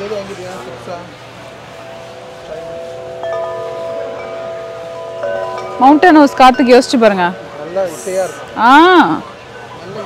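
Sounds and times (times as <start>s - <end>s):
tubular wind chime ringing: 1.5s - 10.0s.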